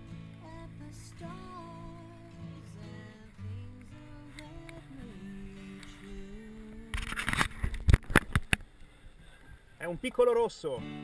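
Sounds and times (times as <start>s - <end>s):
guitar music: 0.0s - 8.3s, 10.7s - 11.0s.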